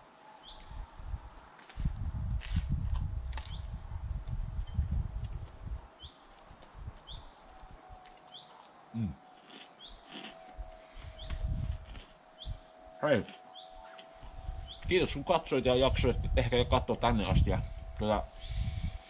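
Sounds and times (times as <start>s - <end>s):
chewing with crisp crunches: 2.4s - 5.6s, 6.3s - 12.6s
small bird chirping: 8.3s - 8.7s, 9.4s - 10.4s, 13.5s - 14.9s
person humming mm: 9.0s - 9.2s.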